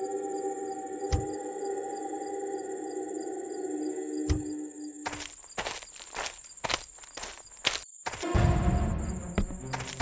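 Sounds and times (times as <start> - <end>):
high insect trill: 0.0 - 10.0
footsteps through brush: 5.0 - 8.4, 9.3 - 10.0.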